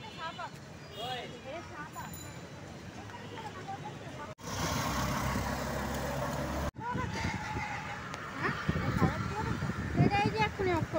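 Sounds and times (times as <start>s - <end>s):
street ambience: 0.0s - 10.9s
vehicle engine rumble and road noise: 0.0s - 10.9s.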